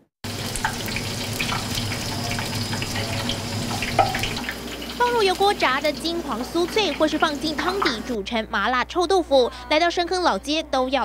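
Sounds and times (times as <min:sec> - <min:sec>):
tofu deep-frying in oil: 0:00.2 - 0:08.2.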